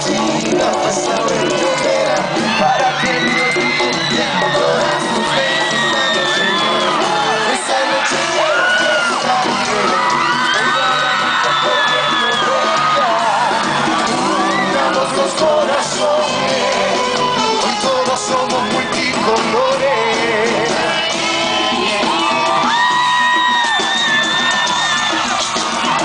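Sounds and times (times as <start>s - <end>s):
crowd screaming and whooping: 0.0s - 26.0s
live pop band with male singer: 0.0s - 26.0s.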